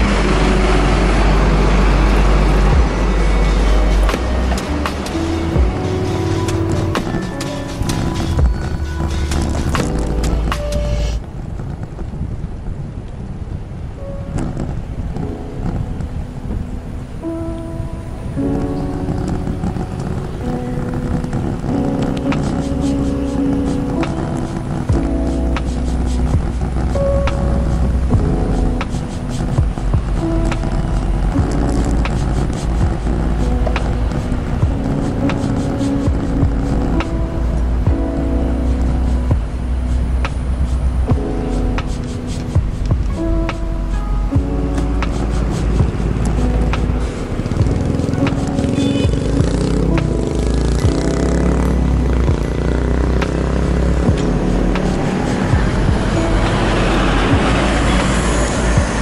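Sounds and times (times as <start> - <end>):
deep bass line: 0.0 - 11.2, 21.3 - 59.0
background music with held notes: 0.0 - 11.4, 14.0 - 59.0.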